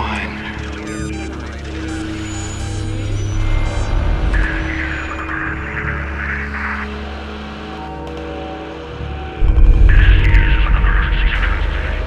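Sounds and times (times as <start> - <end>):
crackly digital glitches: 0.0 - 6.9, 9.4 - 12.0
low drone with held tones: 9.4 - 12.0.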